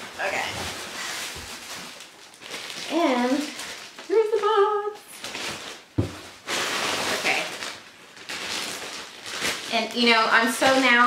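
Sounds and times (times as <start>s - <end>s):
crinkly paper and plastic rustling: 0.0s - 11.0s
sharp knock on packaging: 6.0s - 6.3s.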